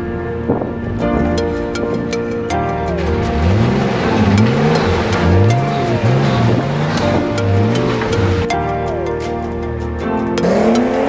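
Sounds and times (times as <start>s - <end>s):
background music: 0.0s - 11.0s
off-road vehicle engine revving: 2.8s - 8.5s, 10.4s - 11.0s.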